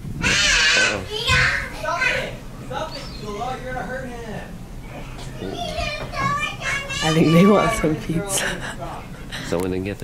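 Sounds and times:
shrill wordless calls: 0.2s - 4.2s.

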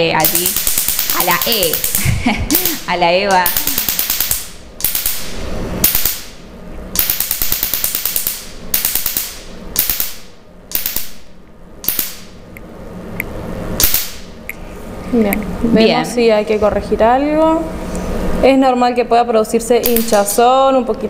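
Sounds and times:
laser firing sharp snapping pulses: 0.2s - 14.6s, 19.8s - 20.4s.

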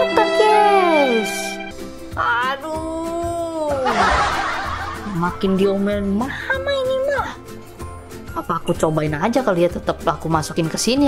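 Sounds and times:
background music: 0.0s - 11.0s
snickering laugh: 3.8s - 5.2s.

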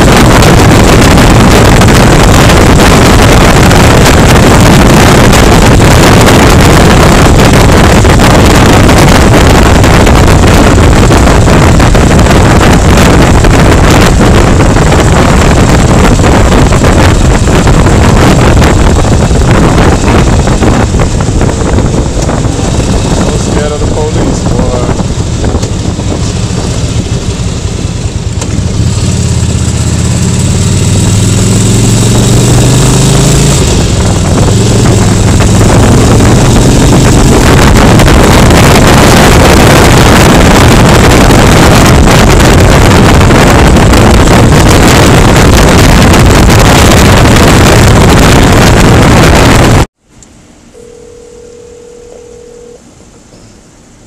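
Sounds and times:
steady hum: 0.0s - 27.3s, 33.6s - 54.0s
motorcycle engine accelerating: 0.0s - 50.0s
wind buffeting on microphone: 0.0s - 50.0s
brief steady tone: 50.7s - 53.7s.

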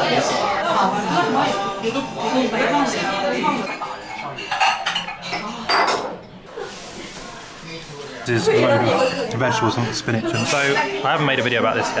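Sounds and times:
tableware clinking and clattering: 3.4s - 6.4s, 8.5s - 9.4s, 10.2s - 11.0s.

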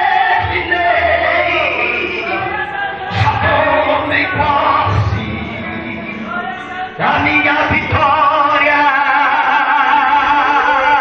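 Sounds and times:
man singing gospel with vibrato: 0.0s - 11.0s
musical backing: 0.0s - 11.0s.

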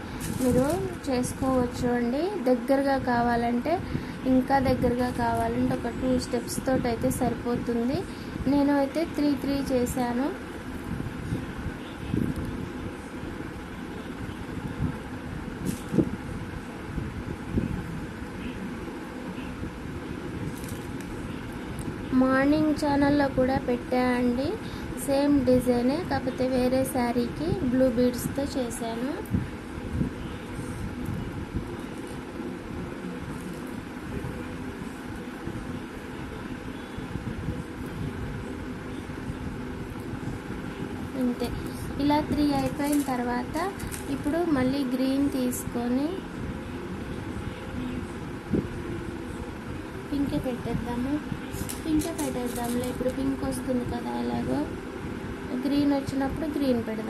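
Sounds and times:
faint hum: 0.0s - 57.0s
beads rattling in plastic bowl: 0.2s - 1.0s.

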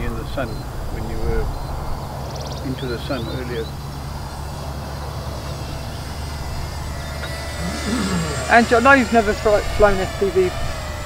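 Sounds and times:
quadcopter motors whining: 0.0s - 11.0s.

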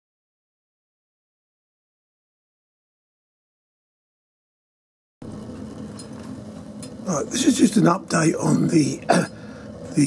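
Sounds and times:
fire burning in stove: 5.2s - 10.0s
low hum: 5.2s - 10.0s.

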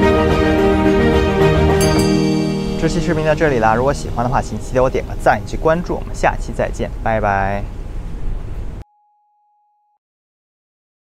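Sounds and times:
low rumbling outdoor noise: 0.0s - 8.8s
faint pure tone: 1.8s - 7.0s.

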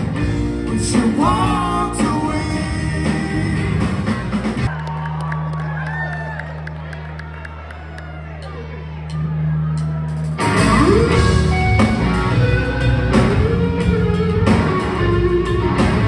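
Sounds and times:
live rock band playing: 0.0s - 4.7s, 9.0s - 16.0s
crowd cheering and whooping: 4.6s - 13.2s.

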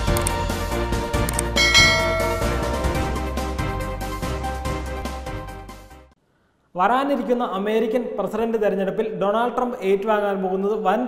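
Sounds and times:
background music: 0.0s - 6.1s
bright bell chime: 1.6s - 3.5s.

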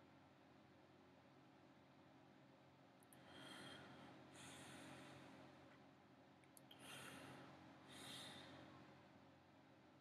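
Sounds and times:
faint room hum: 0.0s - 10.0s
soft breath through nose: 6.7s - 8.8s.

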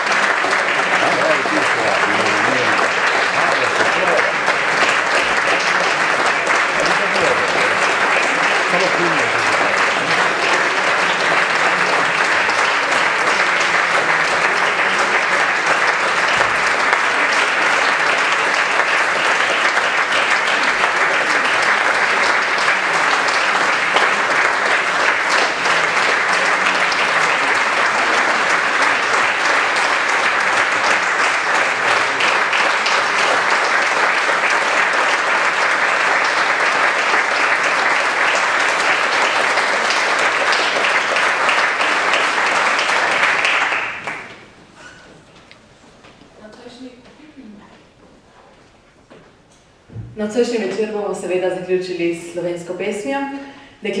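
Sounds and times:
audience applause: 0.0s - 45.6s.

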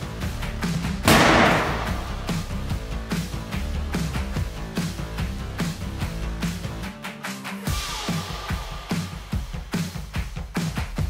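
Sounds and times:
loud bang: 1.1s - 2.4s.

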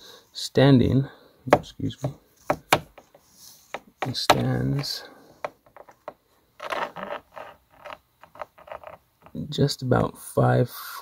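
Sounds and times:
plastic ruler scraping on table: 5.7s - 9.4s.

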